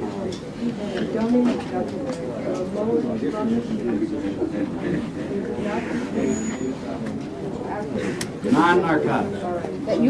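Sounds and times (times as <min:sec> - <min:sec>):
low voices murmuring: 0:00.0 - 0:10.0.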